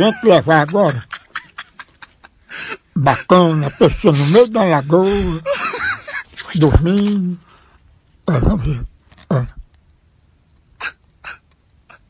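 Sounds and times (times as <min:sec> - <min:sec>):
man's stifled laughter: 0:00.0 - 0:07.3, 0:10.8 - 0:12.0.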